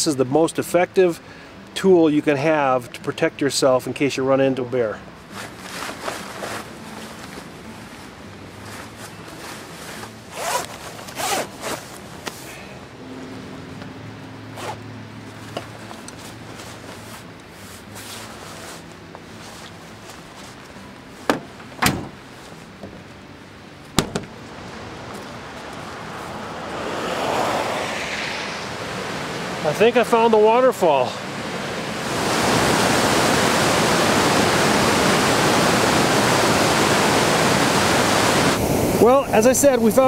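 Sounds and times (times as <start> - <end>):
rain gear rustling: 5.2 - 12.7, 14.5 - 23.2, 23.8 - 27.9
zippers being pulled: 5.4 - 6.8, 9.5 - 12.5, 14.6 - 14.8
running water rushing: 24.4 - 40.0.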